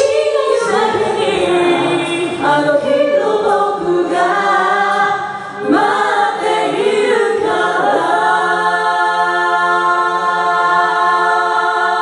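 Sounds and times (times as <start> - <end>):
a cappella group singing: 0.0 - 12.0.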